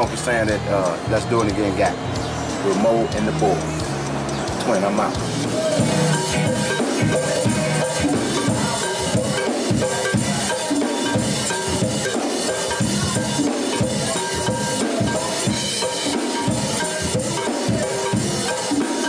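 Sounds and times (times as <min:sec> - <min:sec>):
bass: 0:00.0 - 0:18.6
drum kit beat: 0:00.0 - 0:19.0
keyboard: 0:00.0 - 0:19.0
electric guitar: 0:03.7 - 0:19.0.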